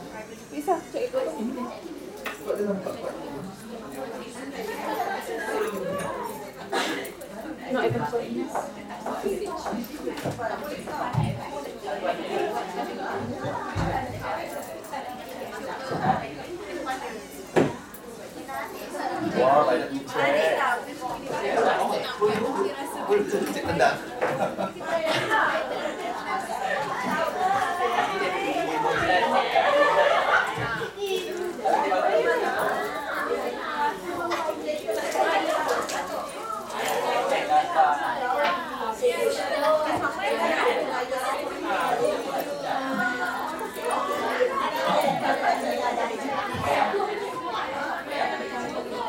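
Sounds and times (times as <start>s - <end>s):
overlapping indistinct chatter: 0.0s - 49.0s.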